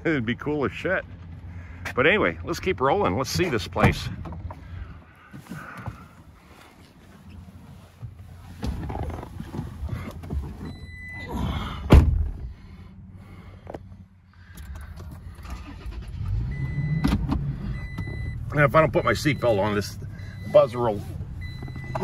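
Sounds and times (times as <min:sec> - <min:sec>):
car door shutting: 0:08.6 - 0:12.6
seatbelt warning chime: 0:10.6 - 0:11.5, 0:16.6 - 0:22.0
car warning chime: 0:10.7 - 0:11.6, 0:16.5 - 0:22.0.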